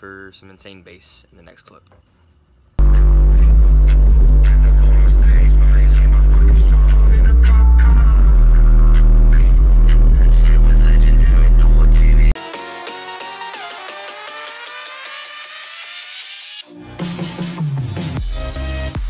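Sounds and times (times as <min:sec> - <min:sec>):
bass-heavy music from subwoofers: 0:02.8 - 0:19.0.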